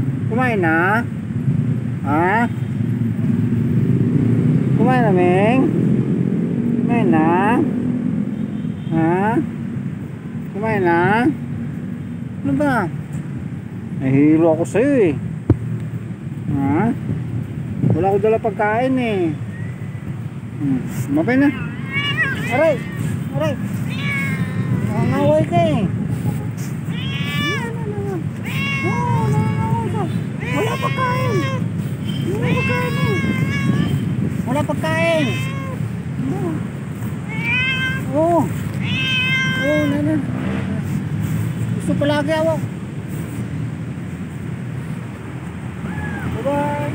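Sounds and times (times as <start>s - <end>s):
cat meowing: 21.0s - 40.3s.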